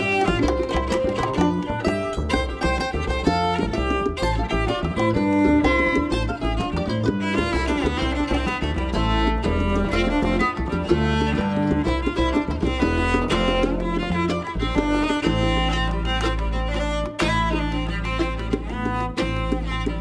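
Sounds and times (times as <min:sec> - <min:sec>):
bongos: 0:00.0 - 0:20.0
bowed cello: 0:00.0 - 0:20.0
mandolin: 0:00.0 - 0:20.0
plucked upright bass: 0:00.0 - 0:20.0.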